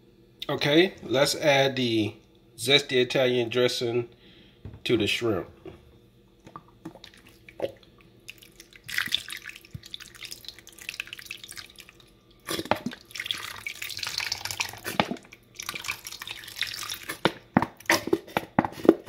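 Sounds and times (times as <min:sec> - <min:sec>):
liquid pouring from a bottle: 0:06.5 - 0:18.2.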